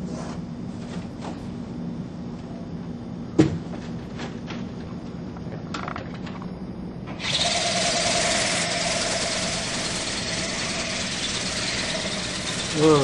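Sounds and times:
toy motor and flapping wings whirring: 7.2s - 13.0s.

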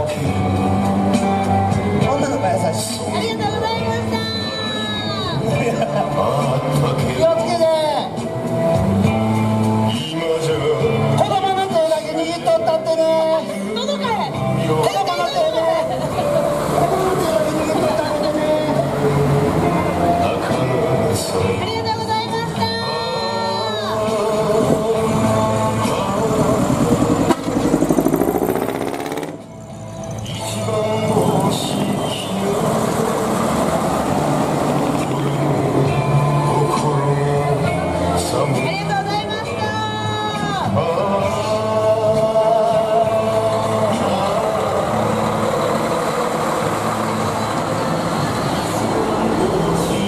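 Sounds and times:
truck diesel engine throbbing: 8.1s - 39.2s, 40.6s - 50.0s
truck exhaust whistling tone: 25.8s - 30.6s, 31.2s - 38.2s, 44.4s - 50.0s.

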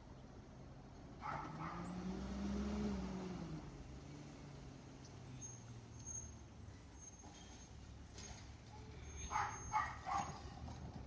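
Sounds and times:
truck diesel engine revving: 1.4s - 6.7s.

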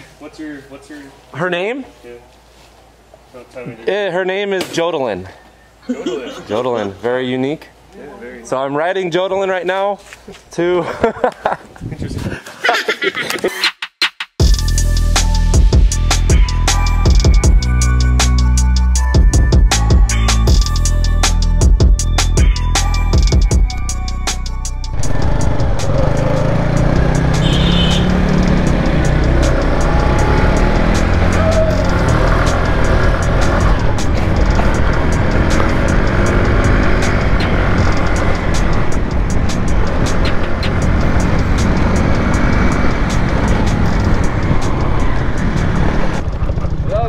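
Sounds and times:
road and wind noise: 10.3s - 12.5s, 14.4s - 47.0s
motorbike engine running: 24.9s - 47.0s.

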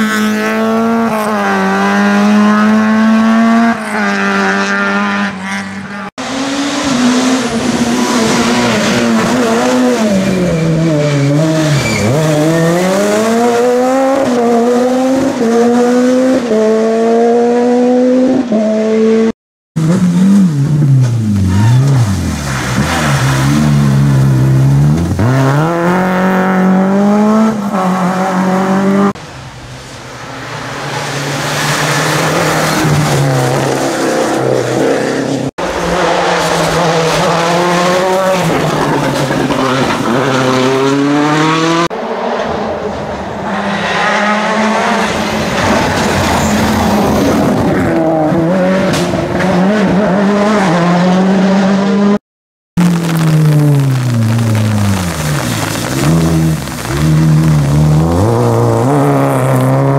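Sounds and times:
rally car engines revving past: 0.0s - 29.3s, 29.9s - 52.2s, 52.8s - 59.9s.

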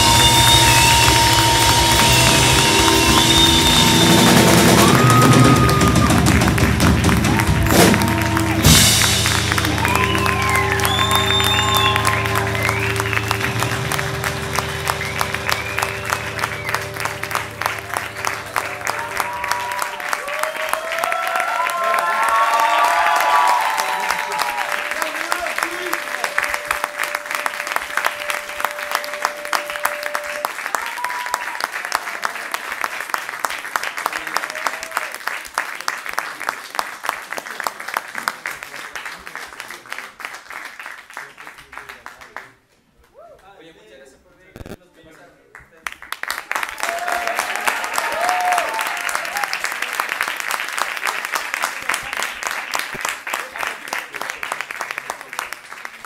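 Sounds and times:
band's sustained chord ringing: 0.0s - 6.2s, 7.1s - 20.2s
audience applauding and calling out: 0.0s - 43.3s, 45.6s - 56.0s.

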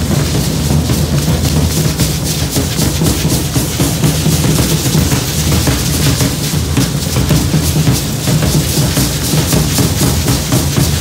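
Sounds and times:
fast steady drum beat: 0.0s - 11.0s.

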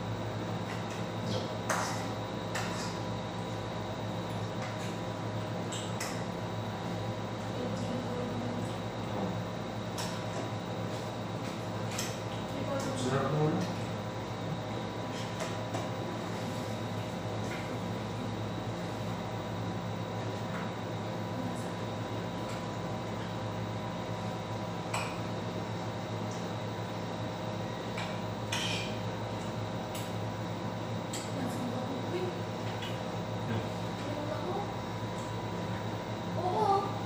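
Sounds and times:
steady background hum: 0.0s - 37.0s.

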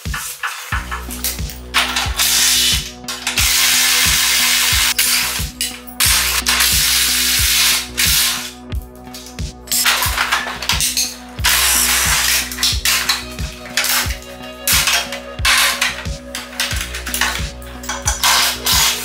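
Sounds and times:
background music with beat: 0.0s - 19.0s
impact wrench hammering: 0.1s - 8.5s, 9.7s - 19.0s.

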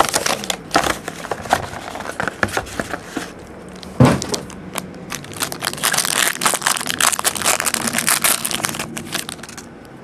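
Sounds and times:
foil wrapper tearing and crinkling: 0.0s - 2.8s, 4.2s - 9.7s.

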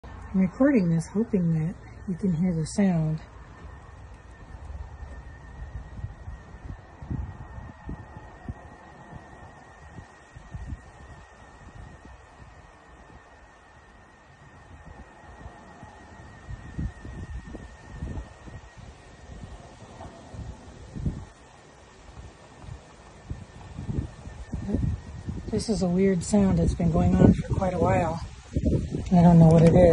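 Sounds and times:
high-pitched wavering tone: 0.0s - 29.9s
wind rumbling on microphone: 0.0s - 29.9s.

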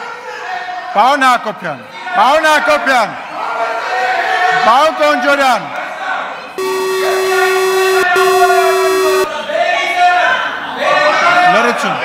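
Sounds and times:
electronic buzzer tone: 6.6s - 9.3s.

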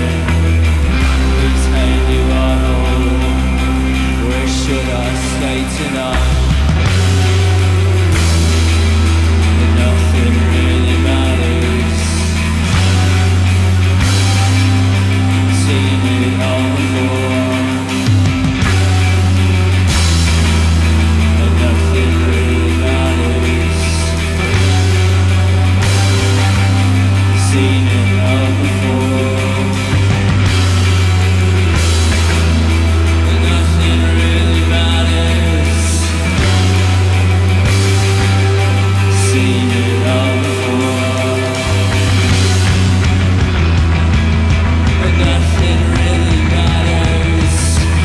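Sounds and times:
electric guitar strummed: 0.0s - 48.0s
held low bass note: 0.0s - 48.0s
live post-punk band music: 0.0s - 48.0s.

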